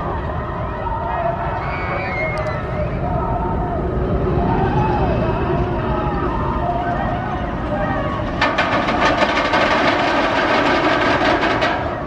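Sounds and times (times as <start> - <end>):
roller coaster rattling on track: 0.1 - 12.0.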